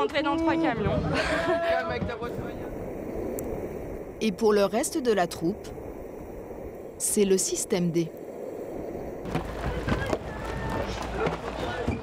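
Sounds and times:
longboard wheels rolling on asphalt: 0:00.0 - 0:12.0.

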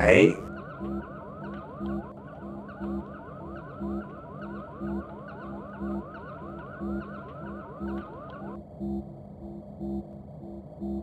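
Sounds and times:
blinking electronic tones: 0:00.4 - 0:08.6.

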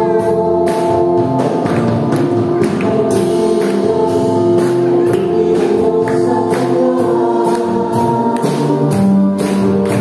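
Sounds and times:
band playing worship song: 0:00.0 - 0:10.0
voices singing: 0:02.5 - 0:10.0.

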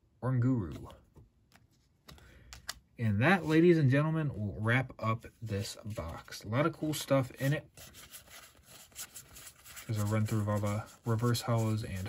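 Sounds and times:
trading cards rustling: 0:05.4 - 0:12.0.

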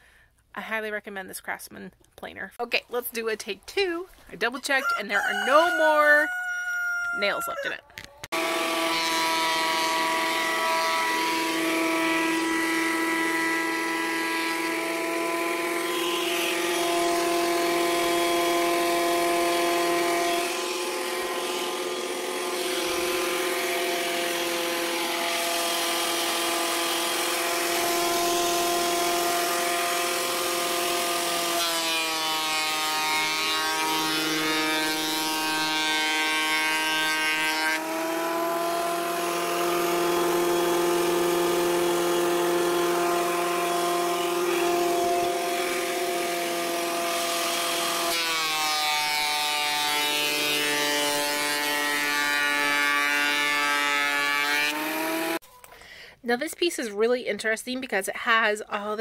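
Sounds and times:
thickness planer whining: 0:08.0 - 0:55.4.

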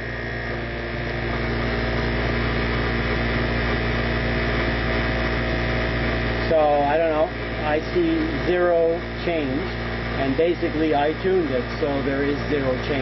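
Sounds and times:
electric motor humming: 0:00.0 - 0:13.0.

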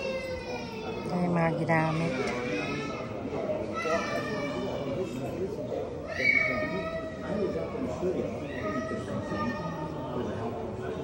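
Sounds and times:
chatter of visitors: 0:00.0 - 0:11.0.

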